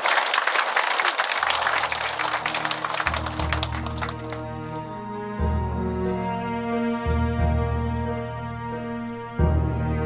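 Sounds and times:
large audience applauding: 0:00.0 - 0:04.8
music: 0:01.4 - 0:10.0.

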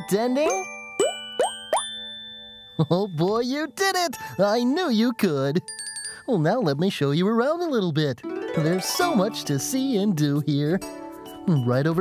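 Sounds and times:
cartoon plop sound effects: 0:00.5 - 0:01.8.

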